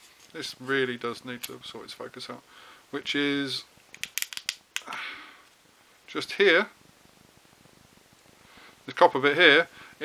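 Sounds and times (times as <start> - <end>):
soft rustle: 0.0 - 2.3.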